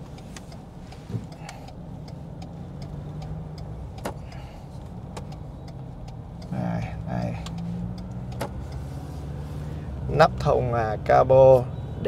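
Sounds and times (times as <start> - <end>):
car cabin engine and road drone: 0.0 - 12.0.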